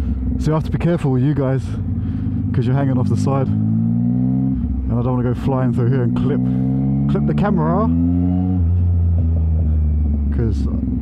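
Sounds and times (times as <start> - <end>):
motorcycle exhaust at low revs: 0.0 - 11.0.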